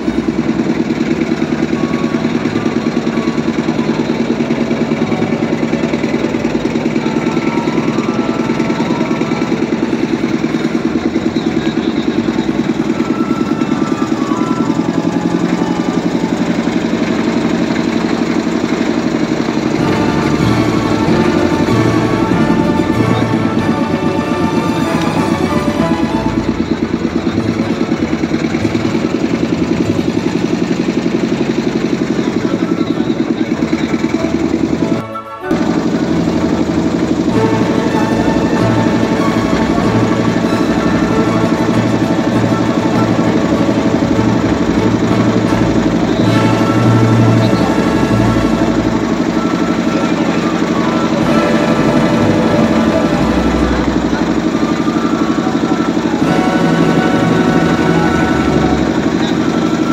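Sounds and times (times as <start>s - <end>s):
background music: 0.0s - 32.2s, 34.1s - 59.9s
boat engine running: 0.0s - 59.9s.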